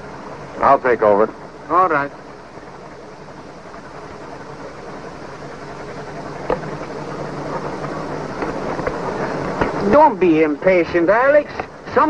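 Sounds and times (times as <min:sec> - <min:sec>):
motor boat engine rumble: 0:00.0 - 0:12.0.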